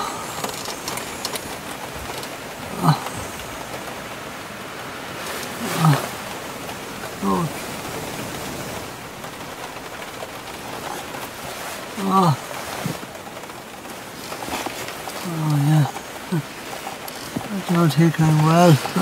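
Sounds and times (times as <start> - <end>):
rain falling on car: 0.0 - 19.0
man moaning: 2.7 - 3.3, 5.6 - 6.2, 7.2 - 7.6, 12.0 - 12.4.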